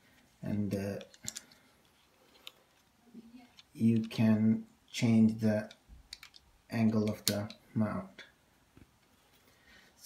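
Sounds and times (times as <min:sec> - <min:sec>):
plastic clicks of phone clamp: 0:05.6 - 0:06.4.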